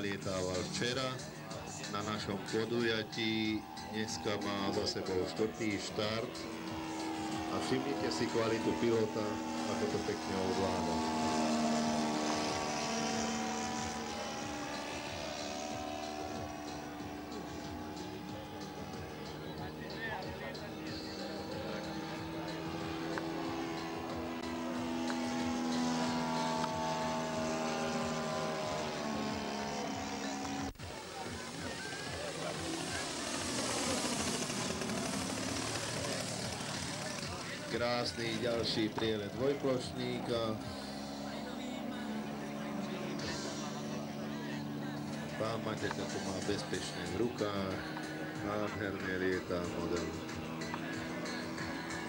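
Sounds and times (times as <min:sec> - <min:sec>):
model plane engine in flight: 0:00.0 - 0:52.0.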